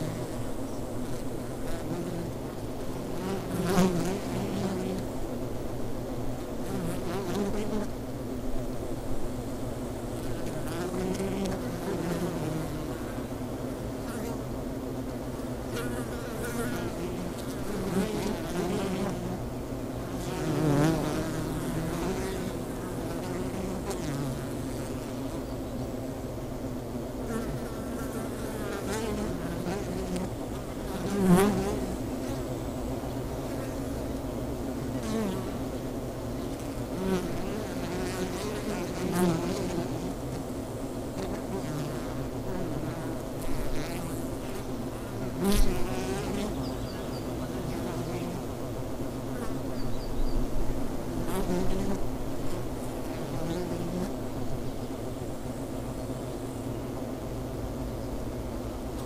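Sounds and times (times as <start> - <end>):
single bees buzzing past: 0.0 - 5.5, 6.2 - 8.1, 9.1 - 25.9, 27.2 - 59.0
honeybees humming at hive: 0.0 - 59.0.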